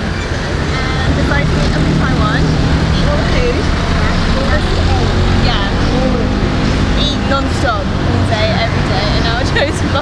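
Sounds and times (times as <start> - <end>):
engine hum of scooters and cars: 0.0 - 10.0
people talking: 0.0 - 10.0.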